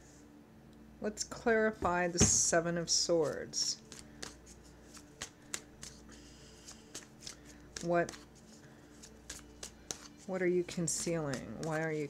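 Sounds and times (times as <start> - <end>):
cards being shuffled: 3.2 - 12.0.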